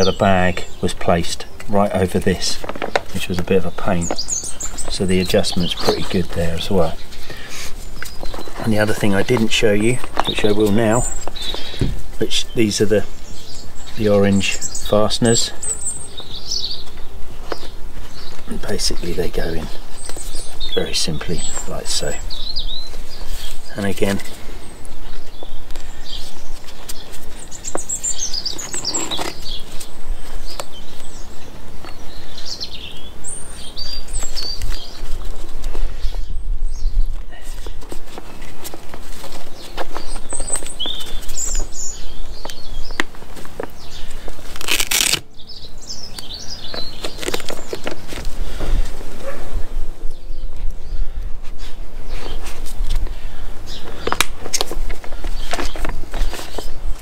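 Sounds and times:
birds chirping: 0.0s - 57.0s.

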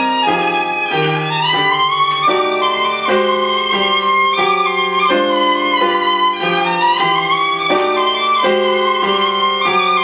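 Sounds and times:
piano chords: 0.0s - 10.0s
violin slow melody: 0.0s - 10.0s.

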